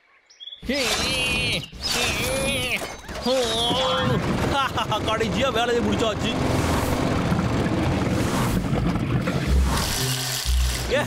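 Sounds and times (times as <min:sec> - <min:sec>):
man talking: 0:00.6 - 0:06.4
water pump motor running: 0:00.7 - 0:11.0.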